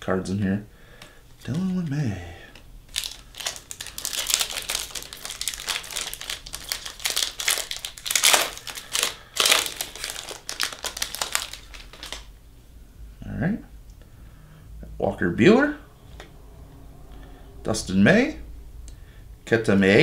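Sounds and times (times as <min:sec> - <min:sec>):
foil wrapper tearing and crinkling: 0:02.9 - 0:12.3.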